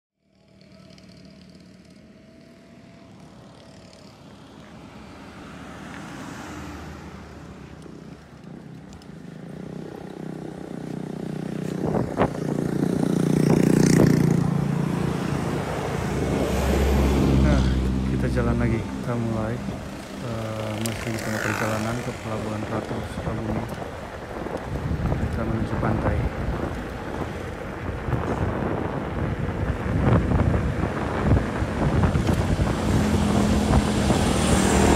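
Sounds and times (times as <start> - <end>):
motorcycle engine passing: 0.2 - 25.0, 26.1 - 34.9
road traffic: 0.2 - 34.9.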